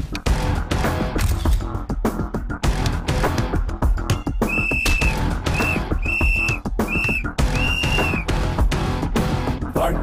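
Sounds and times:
music track: 4.2 - 8.4
pea whistle blasts: 4.4 - 8.3.

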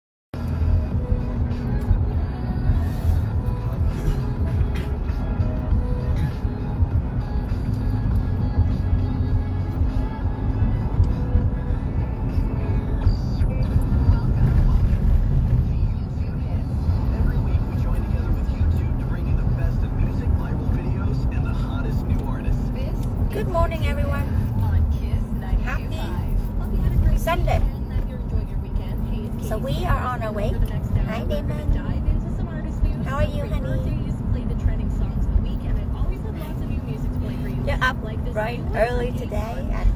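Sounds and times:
car road noise rumble: 0.4 - 39.9
music playing: 0.4 - 39.9
voices talking: 16.3 - 39.9.

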